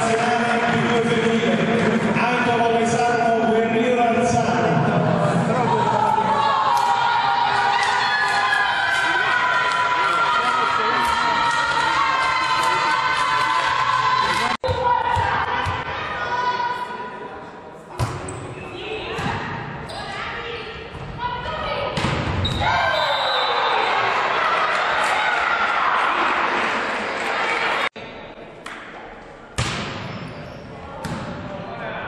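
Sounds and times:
players cheering in a hall: 4.3s - 17.1s, 21.4s - 28.0s
players and spectators shouting: 5.3s - 17.1s, 21.3s - 27.9s
volleyball hits: 21.8s - 22.9s, 29.5s - 30.4s, 31.0s - 31.5s.

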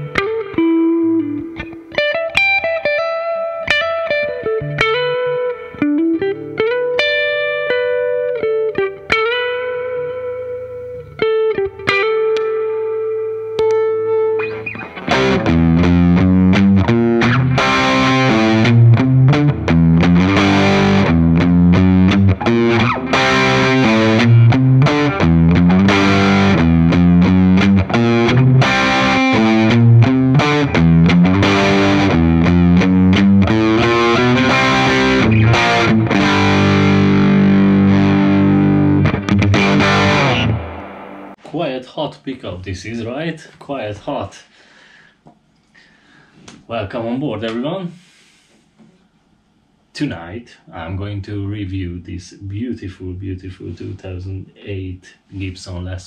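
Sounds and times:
electric guitar riffs and chords: 0.0s - 41.4s.

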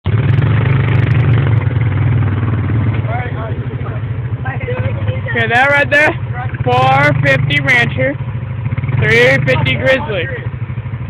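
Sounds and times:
atv engines running hard: 0.1s - 11.0s.

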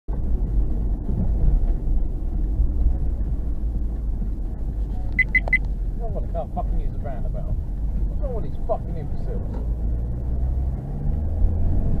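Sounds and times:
car engine and road noise: 0.1s - 12.0s.

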